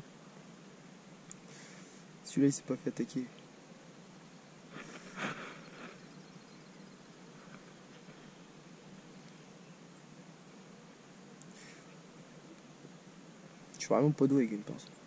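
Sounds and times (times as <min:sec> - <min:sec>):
faint pond-side ambience: 0:00.0 - 0:15.0.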